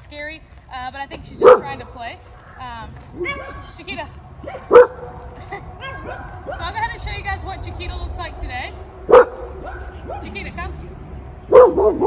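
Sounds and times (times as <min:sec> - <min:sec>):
dog barking: 0:01.4 - 0:01.8, 0:04.4 - 0:05.2, 0:05.8 - 0:06.7, 0:09.1 - 0:10.4, 0:11.5 - 0:12.0.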